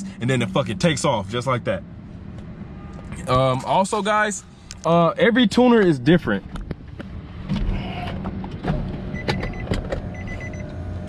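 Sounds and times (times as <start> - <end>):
car warning chime beeping: 9.1 - 10.8.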